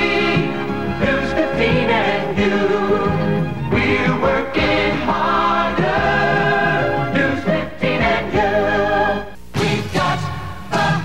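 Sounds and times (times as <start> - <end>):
backing music: 0.0 - 11.0
chorus singing jingle: 0.0 - 11.0.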